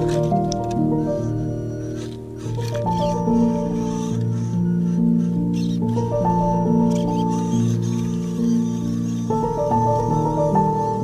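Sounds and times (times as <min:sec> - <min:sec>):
background music with sustained chords: 0:00.0 - 0:11.0.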